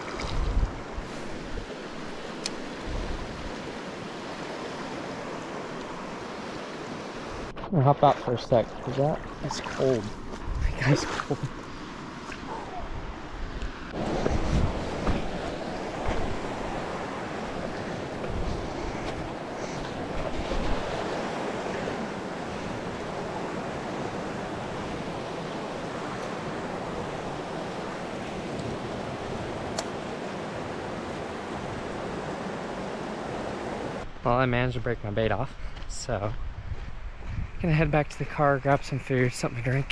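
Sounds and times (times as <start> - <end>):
water rushing over rocks: 0.0 - 11.1, 13.9 - 34.1.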